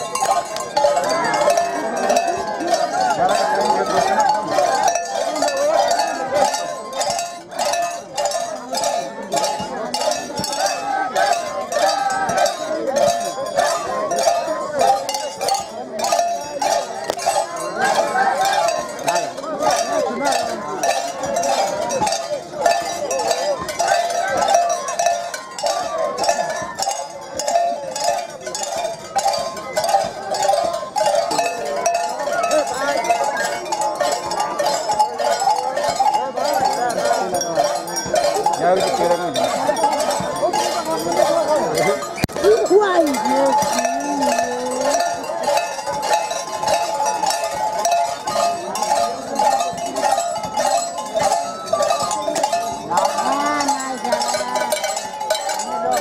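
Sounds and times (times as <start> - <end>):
crowd voices: 0.0 - 56.0
rhythmic metallic clinking: 0.0 - 56.0.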